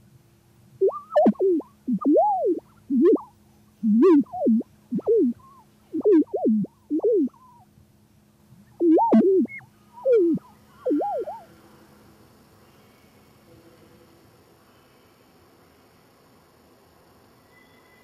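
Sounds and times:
steady low hum: 0:00.0 - 0:16.9
swooping electronic tones: 0:00.8 - 0:07.6, 0:08.8 - 0:11.5.

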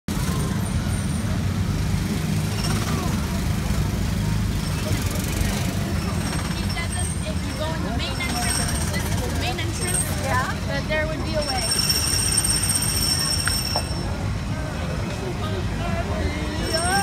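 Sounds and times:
small gasoline engines rumbling: 0:00.1 - 0:17.0.

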